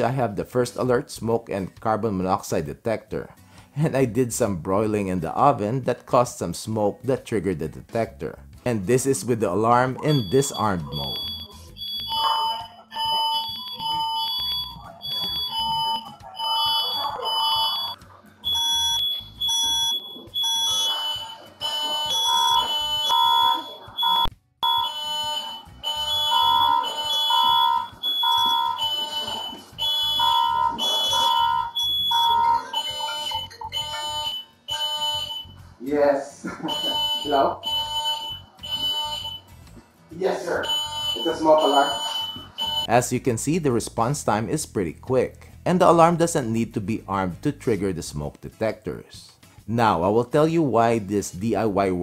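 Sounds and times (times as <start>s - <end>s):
lower-pitched alarm tone: 10.0s - 35.6s, 36.6s - 39.4s, 40.6s - 42.9s
smoke detector beeping: 10.0s - 35.7s, 36.6s - 39.6s, 40.6s - 43.0s.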